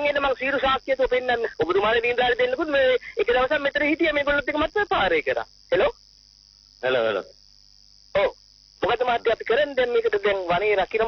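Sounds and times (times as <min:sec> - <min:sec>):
person talking: 0:00.0 - 0:05.9.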